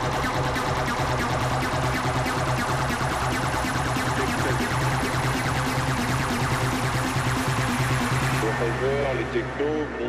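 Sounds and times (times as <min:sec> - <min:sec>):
dense techno beat: 0:00.0 - 0:10.0.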